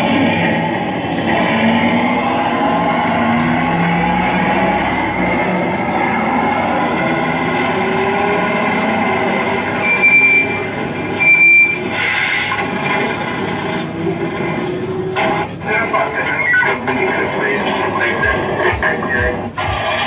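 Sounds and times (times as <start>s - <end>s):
voices: 0.0s - 20.0s
short high beeps: 9.8s - 11.9s.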